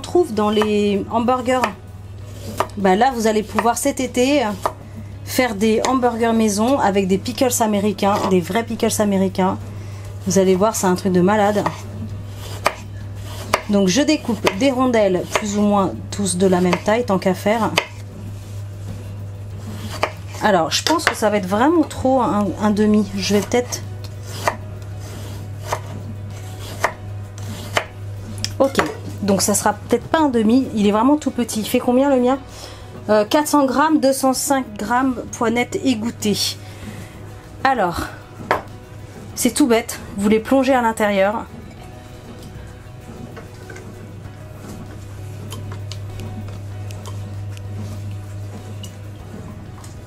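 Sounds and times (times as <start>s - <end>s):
soft background music: 0.0s - 50.0s.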